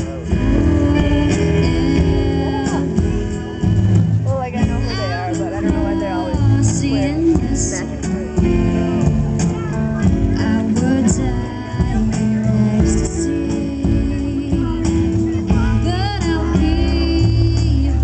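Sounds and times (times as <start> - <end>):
acoustic guitar: 0.0 - 18.0
drums and cymbals: 0.0 - 18.0
keyboard: 0.0 - 18.0
woman singing: 0.3 - 9.0, 9.8 - 18.0.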